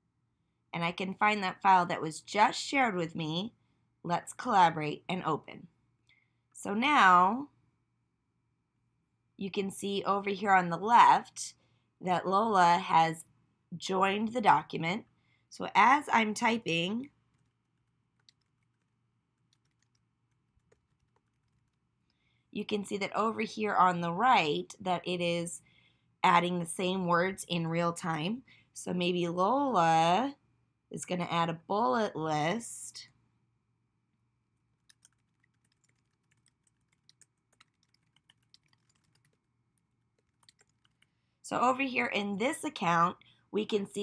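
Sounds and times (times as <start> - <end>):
typing on computer keyboard: 17.2 - 22.1, 34.8 - 41.2.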